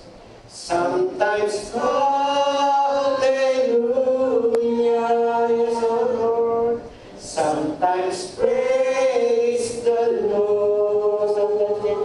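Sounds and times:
group singing worship chorus: 0.6s - 12.0s.

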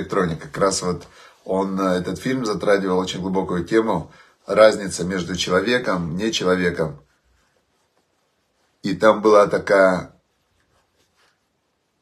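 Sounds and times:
man speaking: 0.0s - 7.1s, 8.8s - 10.2s.

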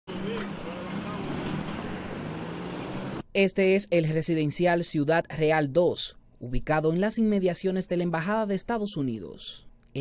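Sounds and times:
faint voices: 0.1s - 2.2s
car engine humming: 0.1s - 3.2s
street noise: 0.1s - 3.3s.

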